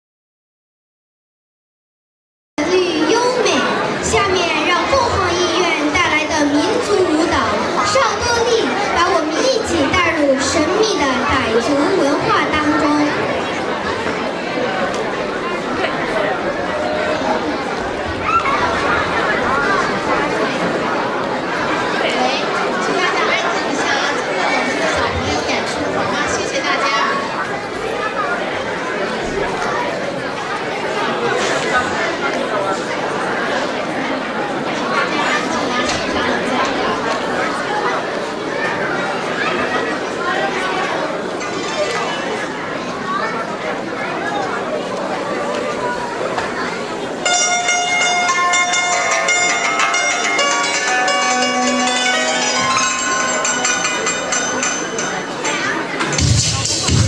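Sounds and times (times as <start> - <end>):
girl speaking over loudspeaker: 2.6 - 13.3
audience chatter: 2.6 - 57.0.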